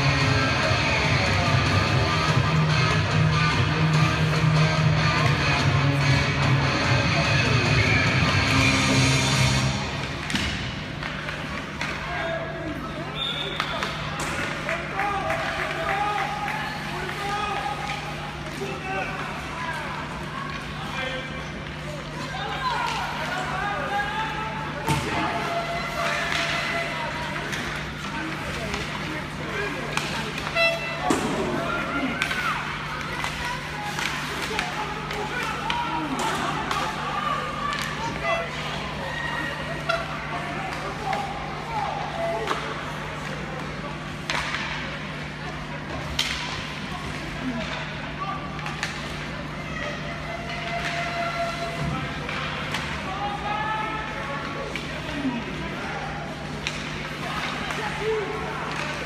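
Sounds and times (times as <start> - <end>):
hockey sticks and puck knocking: 10.0 - 12.1, 24.8 - 37.0, 42.4 - 44.8, 45.9 - 47.2, 56.4 - 59.0
people shouting and calling: 21.8 - 43.3, 46.9 - 59.0.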